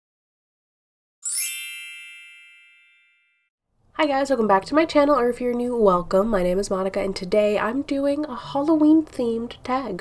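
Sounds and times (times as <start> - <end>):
bright chime shimmer: 1.2 - 3.4.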